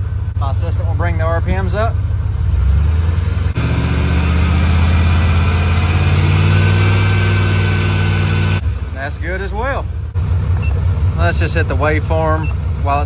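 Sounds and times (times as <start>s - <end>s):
car engine revving steadily: 0.0s - 13.0s.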